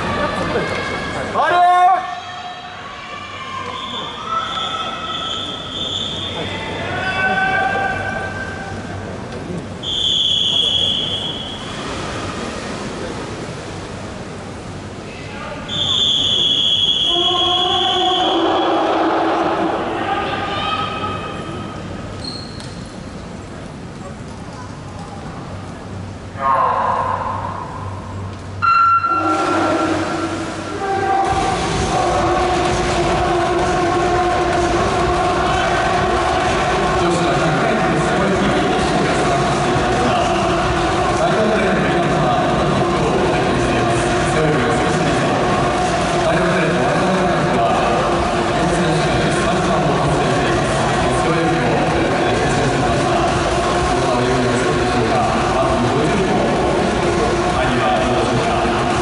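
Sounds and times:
pool arena hubbub: 0:00.0 - 0:59.0
whistle-like tone: 0:03.7 - 0:06.4, 0:09.8 - 0:11.7, 0:15.7 - 0:18.7, 0:28.6 - 0:29.6
spectators cheering: 0:30.9 - 0:42.3.

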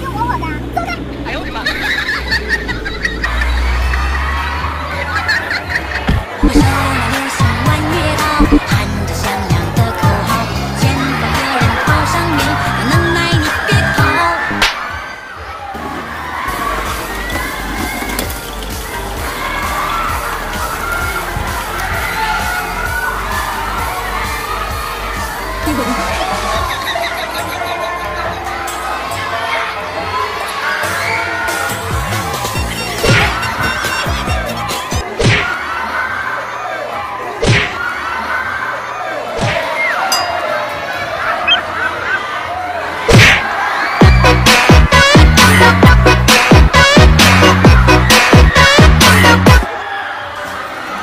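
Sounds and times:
crowd shouting and cheering: 0:00.0 - 0:51.0.

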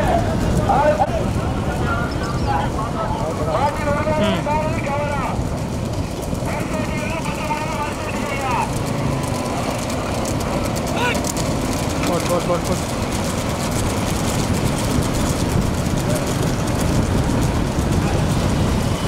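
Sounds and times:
wind on microphone: 0:00.0 - 0:08.2, 0:12.9 - 0:19.0
vehicle rumble on road: 0:00.0 - 0:19.0
people shouting: 0:10.9 - 0:11.3.

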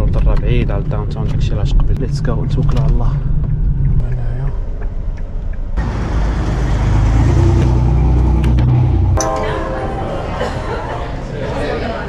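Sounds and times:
car engine and road rumble: 0:00.0 - 0:09.2
road and wind noise: 0:00.0 - 0:09.2.

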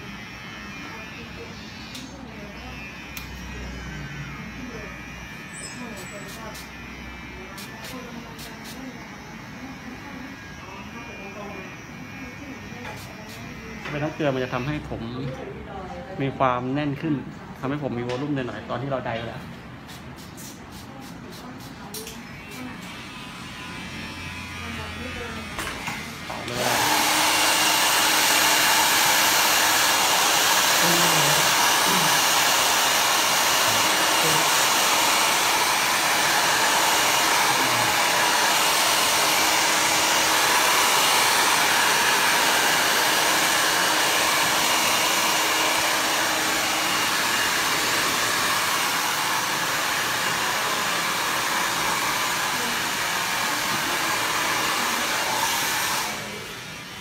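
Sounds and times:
hair dryer blowing: 0:23.6 - 0:57.0.

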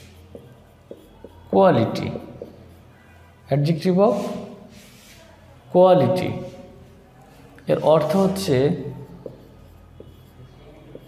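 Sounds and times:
marker writing on whiteboard: 0:00.0 - 0:05.4, 0:06.1 - 0:11.0
marker tip tapping: 0:00.3 - 0:01.4.

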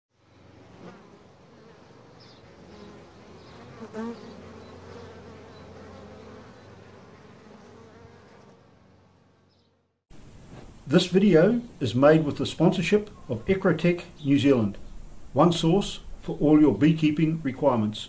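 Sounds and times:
honeybees buzzing: 0:00.2 - 0:10.0.

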